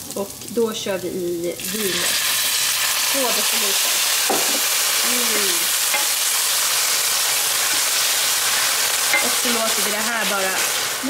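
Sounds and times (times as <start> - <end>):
wine sizzling in frying pan: 0.0 - 11.0.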